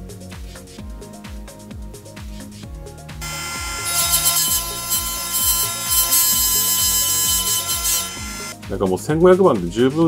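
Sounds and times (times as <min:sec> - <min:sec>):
background music with beat: 0:00.0 - 0:10.0
rotary tool whining: 0:03.2 - 0:08.6
sanding hiss on metal: 0:04.1 - 0:08.5.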